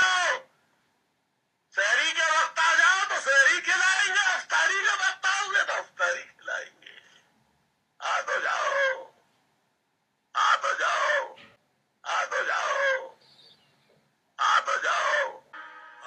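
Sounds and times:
man calling out: 0.0s - 0.5s, 1.8s - 7.1s, 8.0s - 9.2s, 10.3s - 11.4s, 12.0s - 13.2s, 14.4s - 15.5s.

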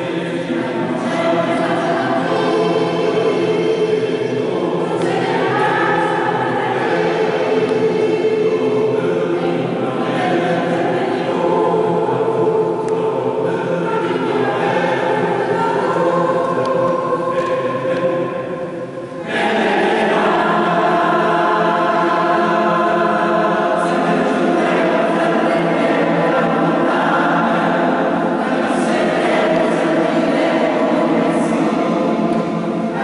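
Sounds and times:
mixed choir singing: 0.0s - 33.0s.

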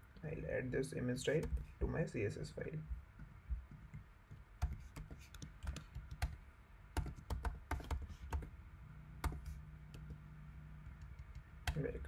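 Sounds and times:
faint low hum: 0.0s - 12.0s
keyboard typing: 1.3s - 1.7s, 3.7s - 6.4s, 7.0s - 8.5s, 9.2s - 10.2s, 10.8s - 12.0s.

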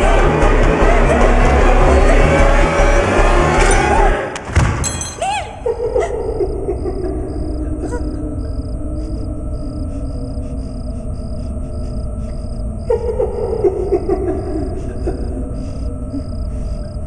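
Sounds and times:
wavering moan-like tones: 0.0s - 4.4s, 5.2s - 17.0s
low rumbling drone: 5.6s - 17.0s.

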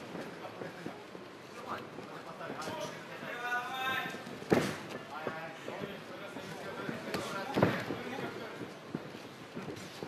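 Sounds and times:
hall background noise: 0.0s - 10.0s.

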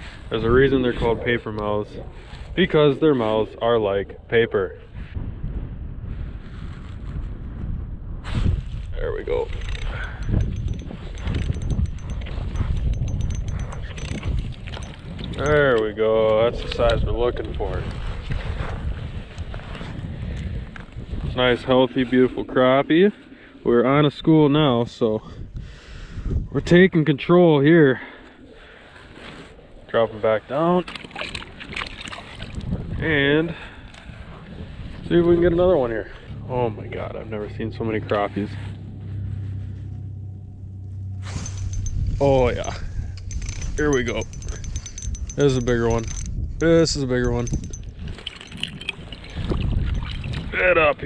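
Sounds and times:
wind buffeting microphone: 0.0s - 27.4s, 28.4s - 51.0s
handling clicks and rustles: 9.3s - 17.5s, 41.2s - 50.6s.

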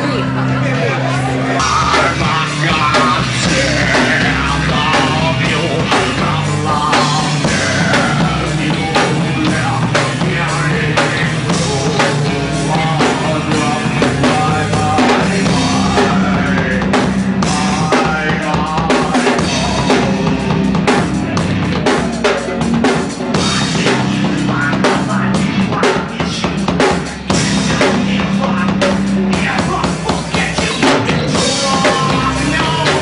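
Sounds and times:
rock band playing: 0.0s - 33.0s.

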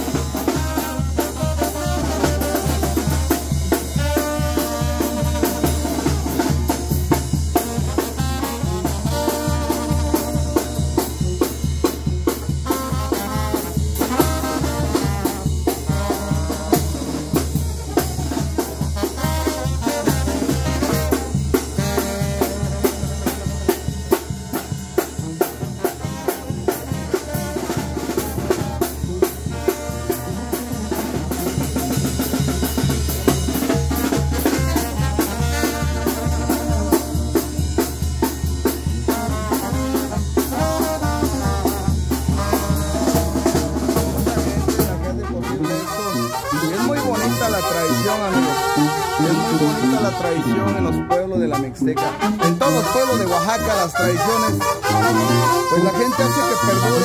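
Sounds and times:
bass drum: 0.0s - 51.0s
snare drum: 0.0s - 51.2s, 52.2s - 57.0s
trombone: 0.0s - 57.0s
trumpets: 0.0s - 57.0s
sousaphone: 42.3s - 57.0s.

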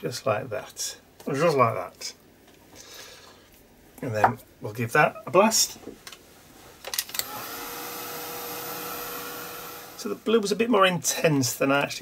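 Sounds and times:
heat tool blowing air: 7.2s - 10.2s.

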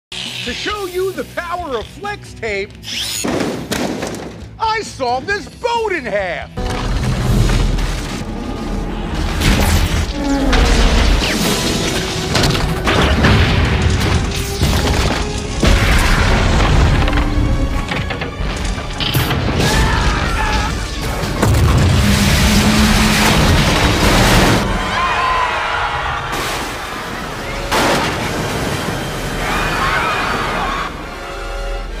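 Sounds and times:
orchestral music: 4.4s - 32.0s
metal crashing: 6.6s - 25.1s.

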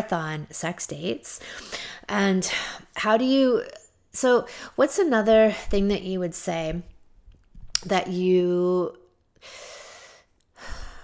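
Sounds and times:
person breathing close to microphone: 1.4s - 2.9s, 9.4s - 11.0s.

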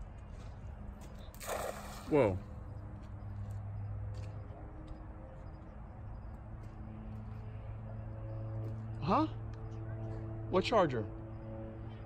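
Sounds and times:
water splash: 1.4s - 2.4s.

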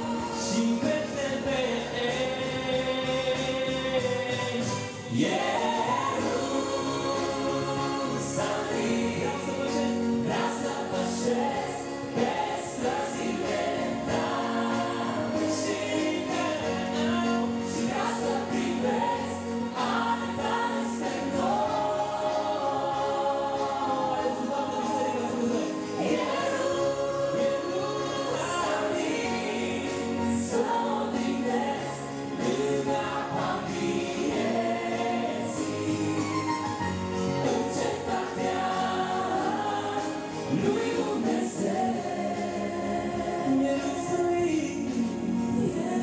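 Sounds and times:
woman and man singing: 0.0s - 36.7s, 37.4s - 46.0s
electronic keyboard: 0.0s - 46.0s.

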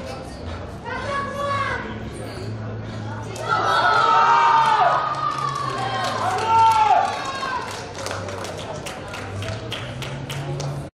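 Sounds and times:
young voices shouting: 3.2s - 7.7s.

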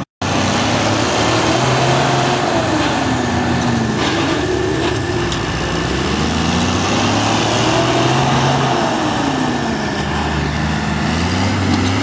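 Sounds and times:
truck engine running under load: 0.0s - 12.0s.

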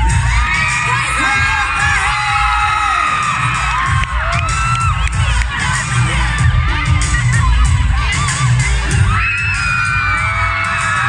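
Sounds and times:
crowd shrieks and whoops: 0.0s - 11.0s.

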